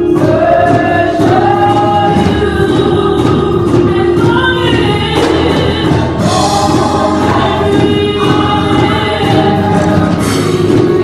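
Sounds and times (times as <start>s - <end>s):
women singing gospel song: 0.0s - 11.0s.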